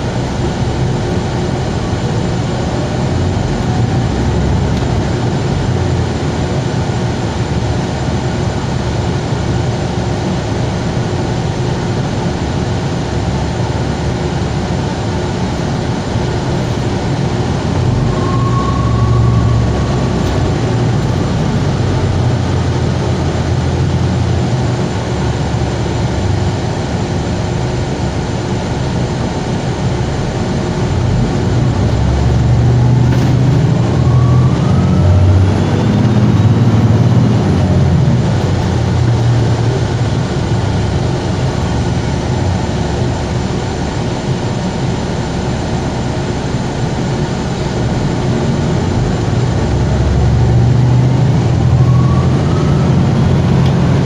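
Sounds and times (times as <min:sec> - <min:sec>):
bus drivetrain and road rumble: 0:00.0 - 0:54.0
bus motor whine: 0:00.0 - 0:54.0.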